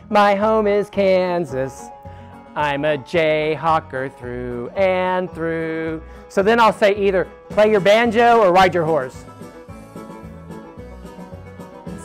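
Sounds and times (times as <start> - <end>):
country music with plucked strings: 0.0 - 12.0.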